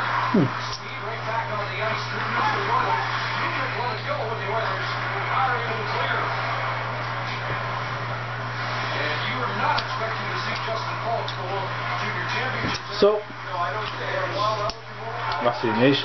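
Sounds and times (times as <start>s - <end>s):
background talk: 8.6s - 16.0s.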